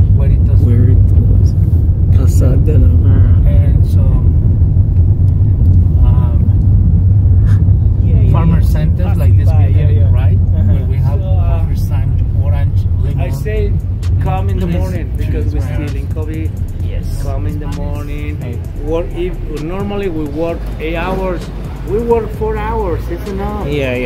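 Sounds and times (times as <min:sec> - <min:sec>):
people talking: 0:00.0 - 0:04.4, 0:05.8 - 0:06.6, 0:07.4 - 0:24.0
car engine and tyres rumbling: 0:00.0 - 0:24.0.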